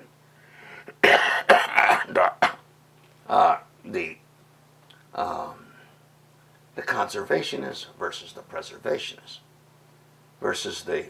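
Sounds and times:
man breathing in: 0:00.3 - 0:00.9
man coughing loudly: 0:01.0 - 0:02.6.

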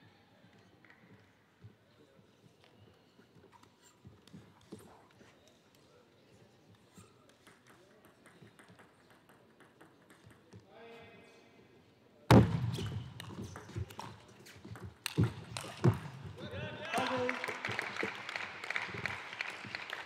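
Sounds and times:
faint table tennis clicks: 0:06.7 - 0:10.7.

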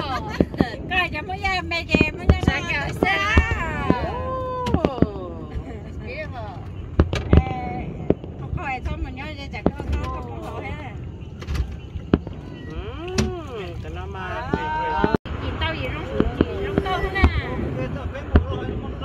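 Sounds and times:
fireworks booming and cracking: 0:00.0 - 0:12.7, 0:14.6 - 0:19.0.

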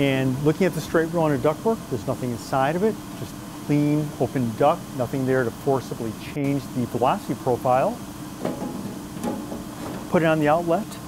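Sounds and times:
fan humming and rushing air: 0:00.0 - 0:11.0
light metal knocks: 0:08.4 - 0:10.1.

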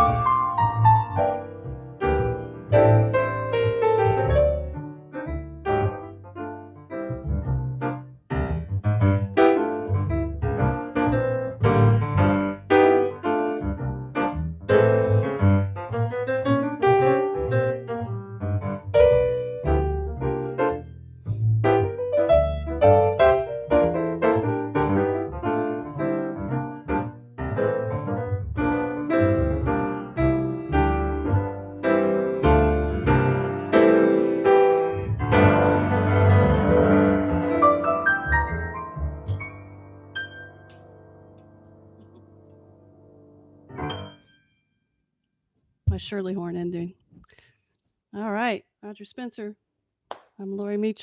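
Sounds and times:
plucked upright bass: 0:00.0 - 0:40.5, 0:45.9 - 0:46.5
grand piano chords and melody: 0:00.0 - 0:44.4.

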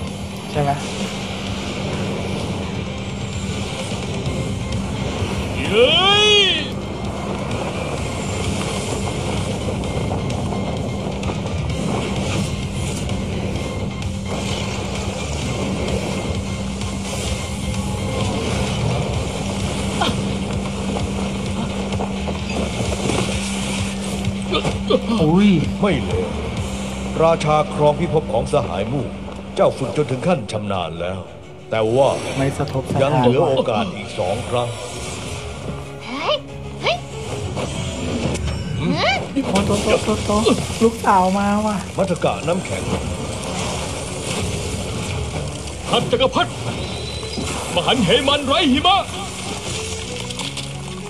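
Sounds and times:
dramatic background music: 0:00.0 - 0:51.0
rumbling sound effects: 0:00.0 - 0:51.0
man exclaiming: 0:05.6 - 0:06.7.

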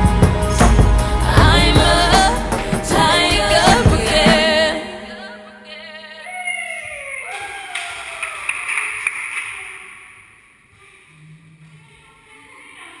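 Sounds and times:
pop song ending: 0:00.0 - 0:06.1.

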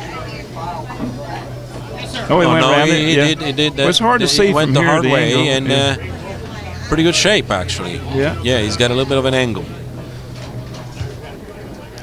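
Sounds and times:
murmur of voices: 0:00.0 - 0:12.0
steady low hum: 0:00.0 - 0:12.0.

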